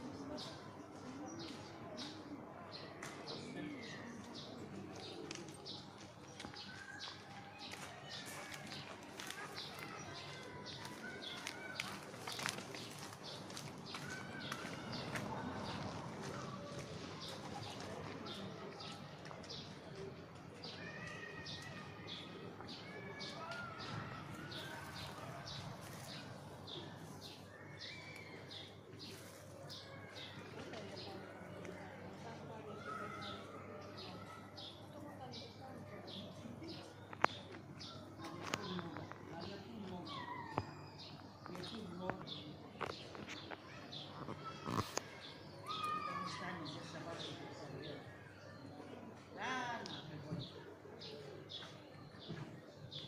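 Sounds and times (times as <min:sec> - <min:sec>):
birds chirping: 0:01.4 - 0:53.0.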